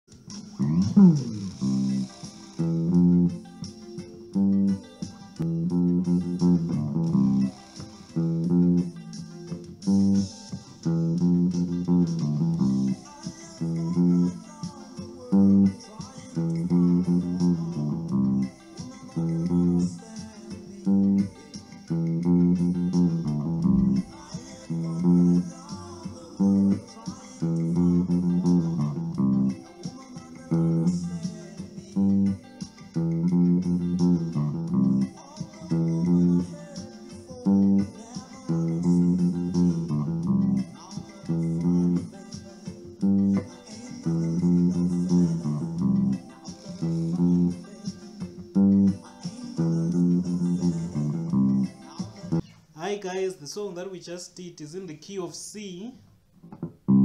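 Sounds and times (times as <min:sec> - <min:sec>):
electric bass reggae bassline: 0:00.1 - 0:52.4, 0:56.5 - 0:57.0.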